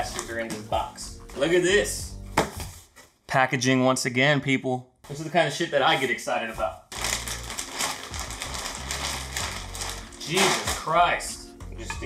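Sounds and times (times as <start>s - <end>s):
plastic bag crinkling: 6.9s - 11.0s.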